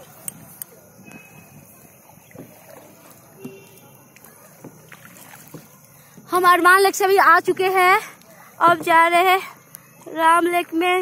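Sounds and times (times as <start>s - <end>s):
water lapping and dripping: 0.0s - 11.0s.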